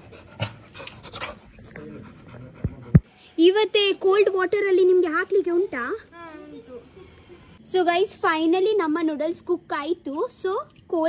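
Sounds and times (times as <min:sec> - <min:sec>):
dog panting: 0:00.0 - 0:03.1.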